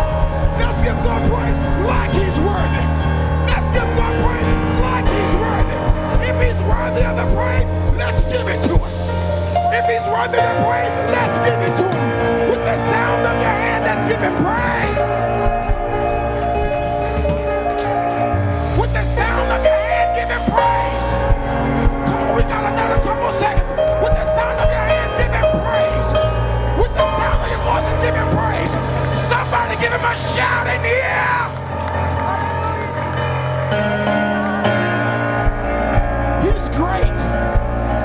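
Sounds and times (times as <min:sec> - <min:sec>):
drum and cymbal hits: 0:00.0 - 0:09.4
bass line: 0:00.0 - 0:38.0
sustained keyboard chords: 0:00.0 - 0:38.0.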